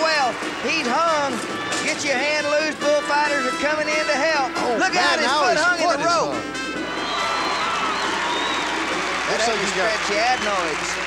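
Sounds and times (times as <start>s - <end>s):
crowd cheering: 0.0s - 3.6s, 4.6s - 11.0s.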